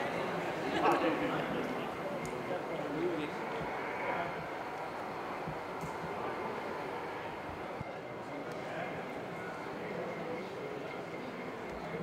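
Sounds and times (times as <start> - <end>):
hubbub of a large hall: 0.0 - 12.0.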